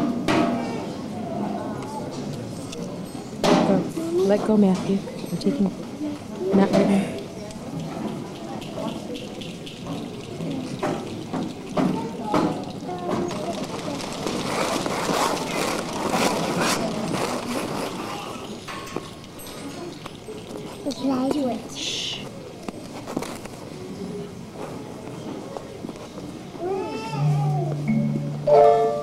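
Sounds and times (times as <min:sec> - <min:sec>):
children chattering: 0:00.0 - 0:29.0.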